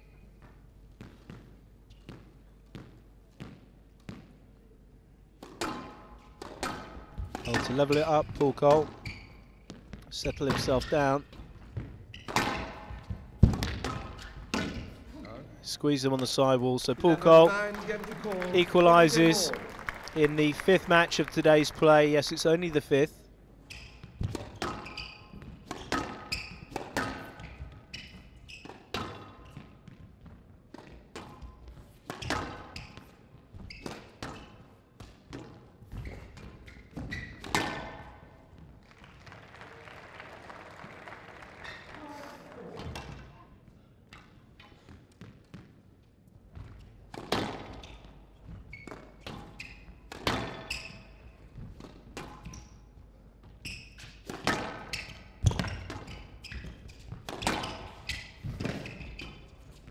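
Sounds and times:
squash ball knocks: 11.6s - 14.9s.

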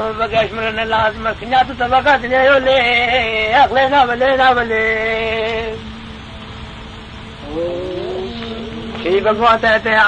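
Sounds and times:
man singing: 0.0s - 5.9s, 7.4s - 10.0s.

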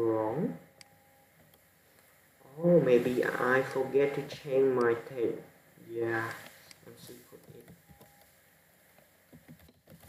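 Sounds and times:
computer keyboard keystrokes: 7.6s - 8.2s.

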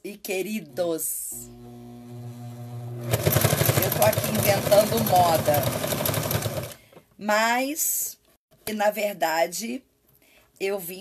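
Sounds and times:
sewing machine stitching: 1.4s - 6.8s.

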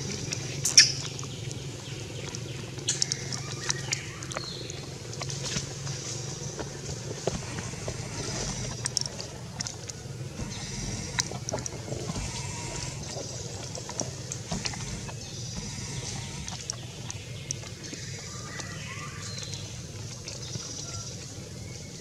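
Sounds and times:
low steady hum: 0.0s - 22.0s
faint animal calls: 7.3s - 17.2s.

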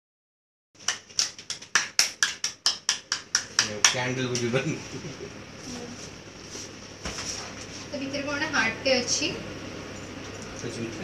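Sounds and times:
hands clapping in rhythm: 0.8s - 4.6s.

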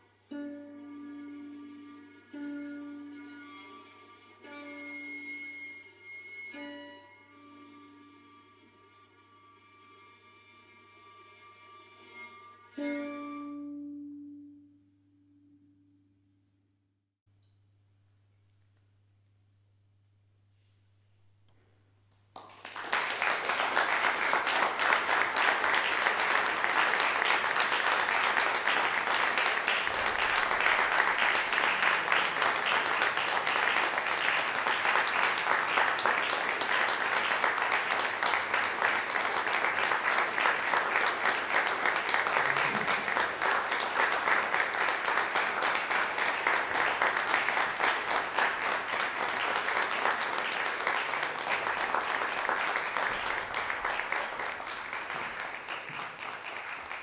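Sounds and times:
audience applauding: 22.2s - 57.0s.

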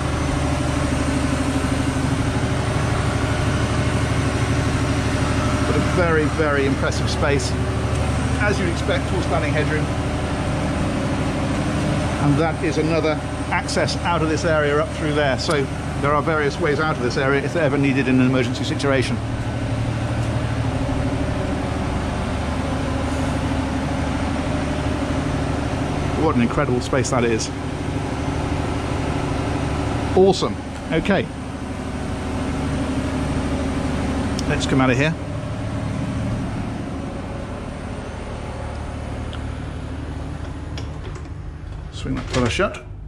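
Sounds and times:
engine-room machinery humming: 0.0s - 43.0s.

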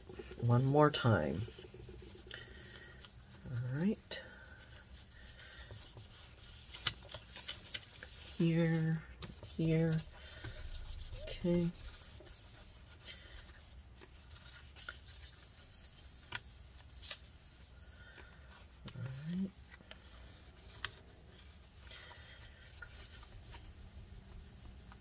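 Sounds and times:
paper towel rubbing on metal: 0.0s - 25.0s.

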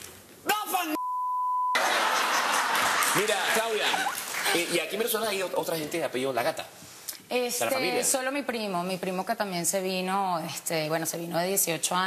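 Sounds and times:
high censor bleep: 1.0s - 1.8s
studio audience applause: 1.7s - 5.1s.

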